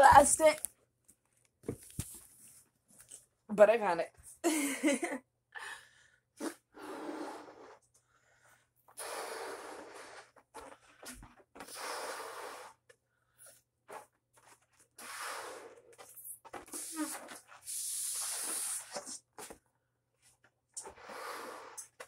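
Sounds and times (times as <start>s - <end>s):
breaths blowing up balloon: 6.4s - 14.2s, 14.9s - 19.6s, 20.8s - 22.0s.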